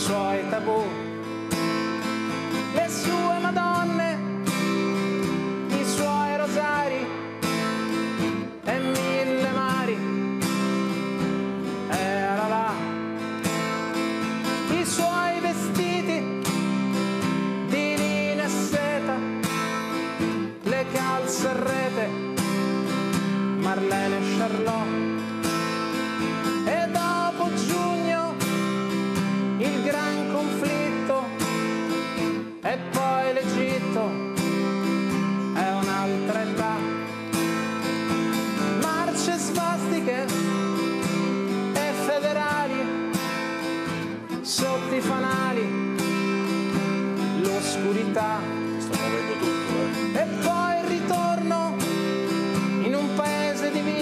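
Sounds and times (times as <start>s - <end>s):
guitar strumming chords: 0.0s - 54.0s.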